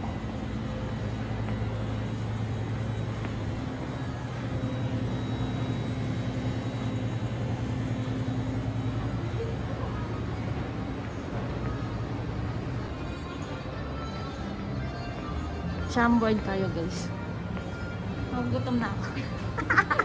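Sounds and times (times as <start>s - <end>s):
faint steady high tone: 0.0s - 15.8s
steady low hum: 0.0s - 20.0s.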